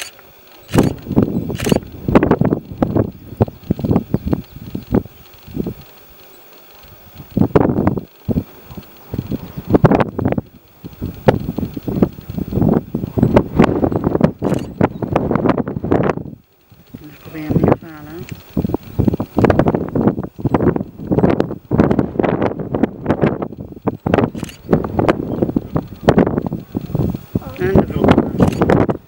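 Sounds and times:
wind buffeting microphone: 0.0 - 6.2, 6.8 - 29.0.

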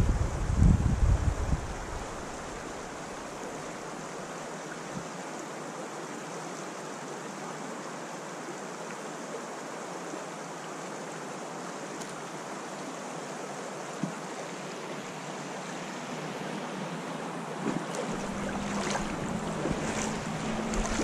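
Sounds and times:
wind rumble on microphone: 0.0 - 2.8, 17.5 - 21.0
creek water flowing: 1.0 - 21.0.

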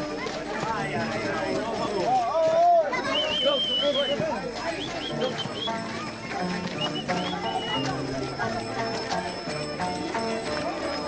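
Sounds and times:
group chatter and calls: 0.0 - 11.0.

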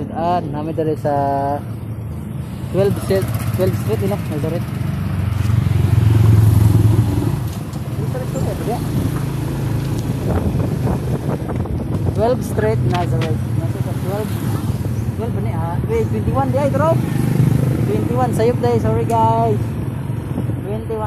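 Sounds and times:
motorcycle engine running: 1.9 - 21.0.

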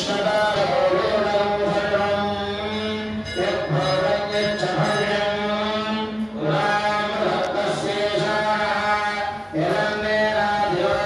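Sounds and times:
voices chanting mantra: 0.0 - 11.0.

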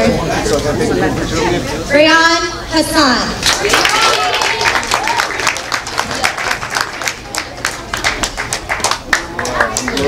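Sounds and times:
audience applauding: 3.4 - 10.0.

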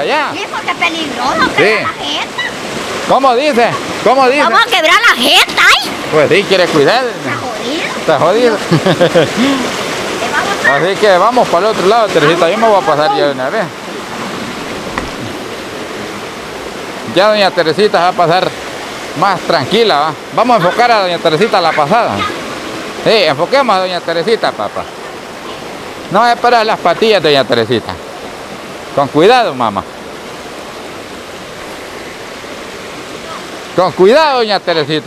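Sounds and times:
river running over rocks: 0.0 - 35.0
stream rushing over stones: 0.0 - 35.0
faint tap: 14.9 - 15.2.

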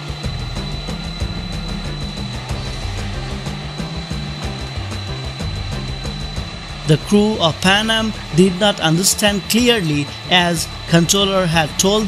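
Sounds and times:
background music with bass line: 0.0 - 12.0
jet engines whining: 0.0 - 12.0.

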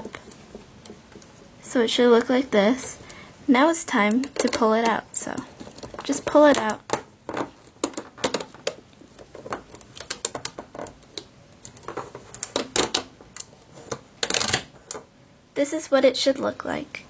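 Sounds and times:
rubber bands clicking and snapping: 4.1 - 13.5.

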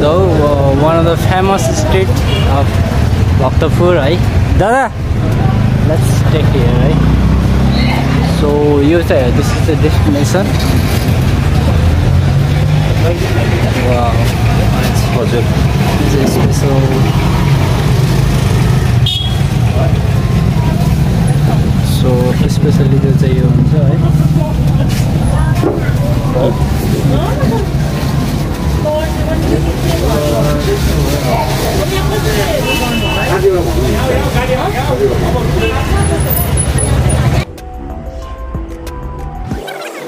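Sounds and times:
crowd chatter: 0.0 - 40.0
street traffic: 0.0 - 40.0
background music with held notes: 37.5 - 40.0.

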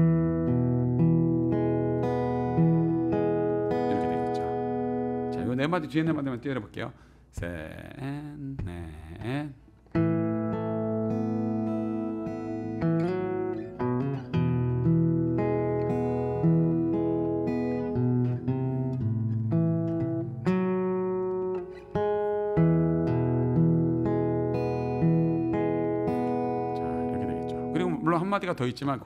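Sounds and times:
acoustic guitar fingerpicked: 0.0 - 6.4, 7.4 - 29.0.

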